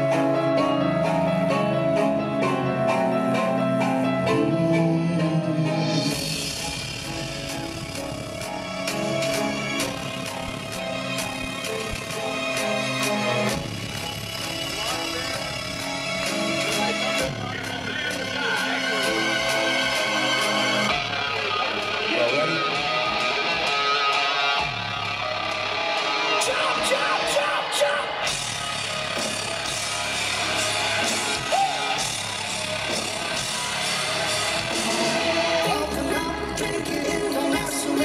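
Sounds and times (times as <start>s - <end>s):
bass guitar: 0.0s - 38.0s
electric guitar: 0.0s - 38.0s
rock band chord: 5.8s - 38.0s.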